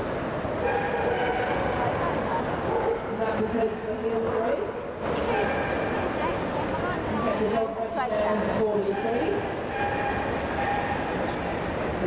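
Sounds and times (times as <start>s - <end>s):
murmur of indoor hall: 0.0s - 12.0s.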